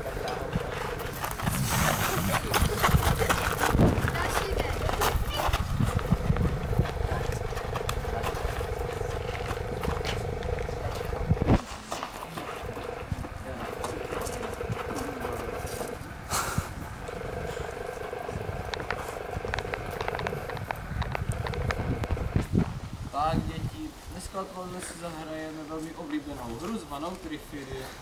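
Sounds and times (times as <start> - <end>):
steady hum: 0.0 - 24.1
wind rumbling on microphone: 0.0 - 26.7.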